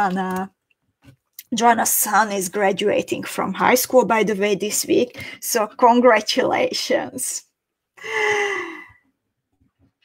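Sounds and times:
woman sighing: 0:08.0 - 0:09.0.

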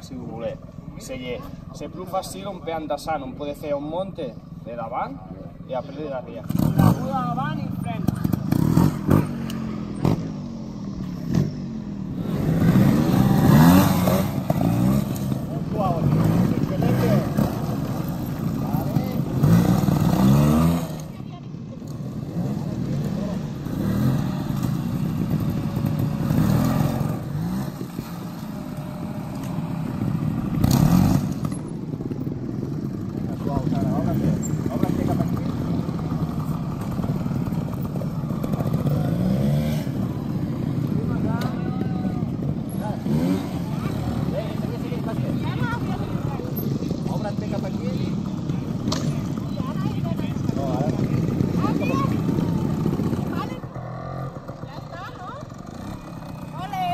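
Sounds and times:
motorcycle engines revving: 0:00.0 - 0:56.9.

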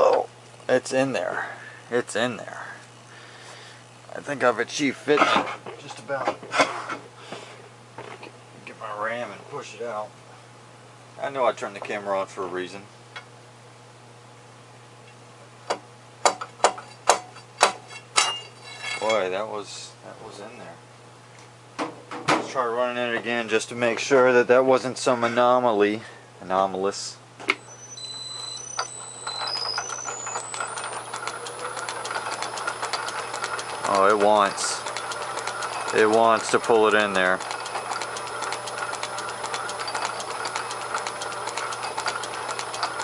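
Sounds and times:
high whine: 0:27.5 - 0:38.0
lathe motor hum: 0:27.6 - 0:43.0
fast even ticking: 0:29.5 - 0:43.0.

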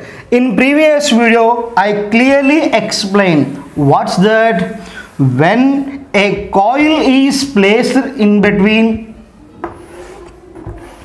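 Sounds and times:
chalk scraping on blackboard: 0:02.6 - 0:11.0.

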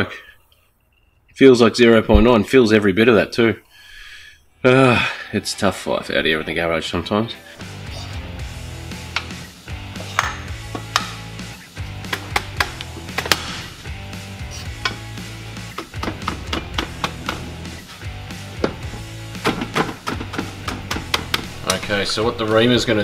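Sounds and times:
background music: 0:03.8 - 0:23.0.

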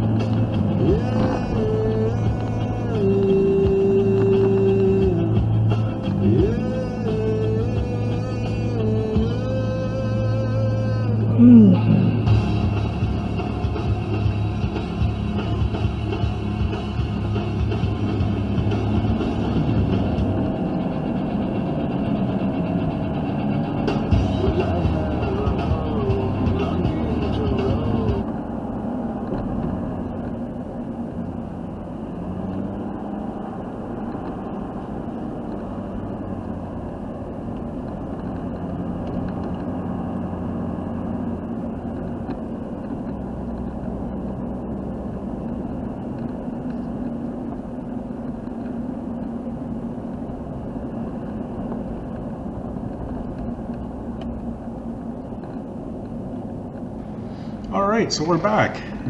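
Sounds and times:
music: 0:00.0 - 0:28.2
engine hum inside cab: 0:00.0 - 0:59.0
road noise: 0:00.0 - 0:59.0.

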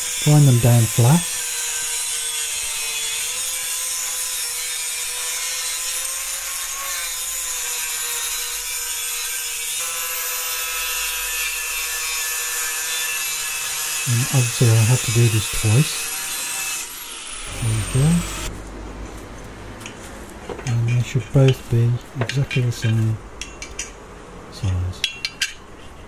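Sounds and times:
angle grinder grinding metal: 0:00.0 - 0:18.5.

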